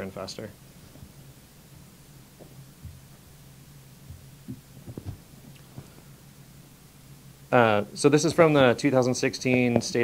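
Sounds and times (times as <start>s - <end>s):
low room hum: 0.0s - 10.0s
soft low thumps: 1.8s - 3.4s, 4.0s - 6.0s.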